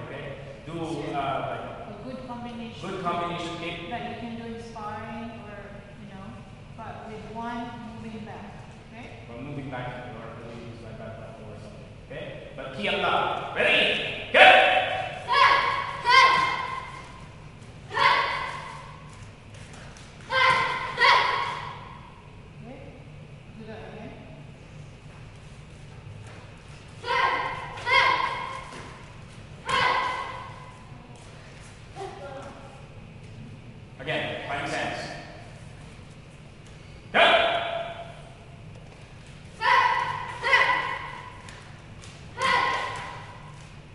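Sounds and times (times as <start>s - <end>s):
boy yelling sharp shouts: 13.7s - 17.0s, 17.9s - 18.7s, 20.3s - 21.8s, 27.0s - 28.6s, 29.6s - 30.4s, 39.6s - 41.2s, 42.4s - 43.1s.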